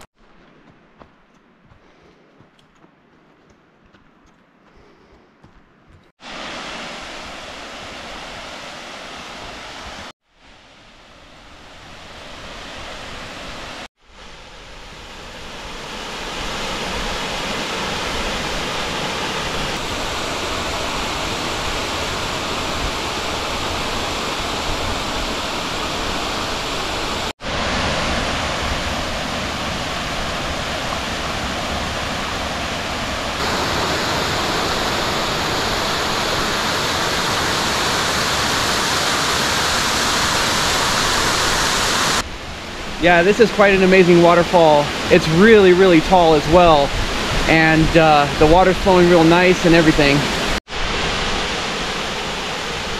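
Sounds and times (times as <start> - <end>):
waterfall rushing: 6.2 - 10.1, 15.4 - 52.9.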